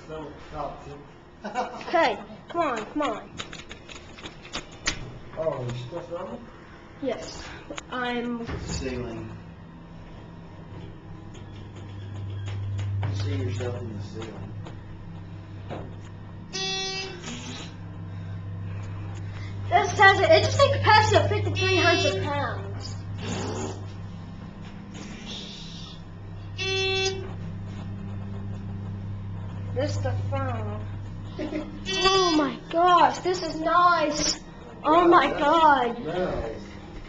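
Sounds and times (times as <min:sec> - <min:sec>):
elevator running low hum: 0:00.0 - 0:37.0
elevator beep: 0:16.5 - 0:18.3, 0:26.4 - 0:28.5, 0:31.3 - 0:32.6.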